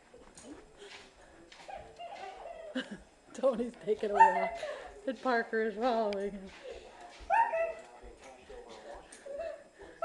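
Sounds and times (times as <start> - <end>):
footsteps on hardwood floor: 0.2 - 2.5, 6.4 - 9.0.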